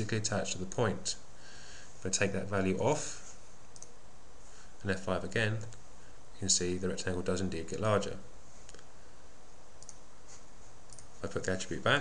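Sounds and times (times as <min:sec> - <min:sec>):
background hiss: 0:00.0 - 0:12.0
faint computer mouse clicks: 0:09.8 - 0:10.0.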